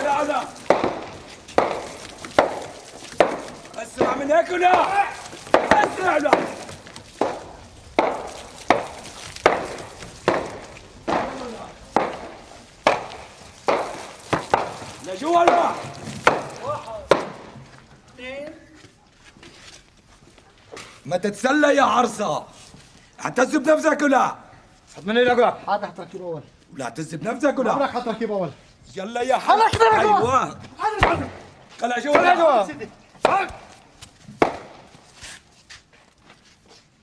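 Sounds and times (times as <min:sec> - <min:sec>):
sharp whacks of blows: 0:00.0 - 0:17.6, 0:33.2 - 0:35.0
man shouting: 0:04.2 - 0:06.6, 0:16.6 - 0:17.1, 0:29.3 - 0:31.3, 0:32.0 - 0:33.6
person shouting: 0:16.6 - 0:17.1.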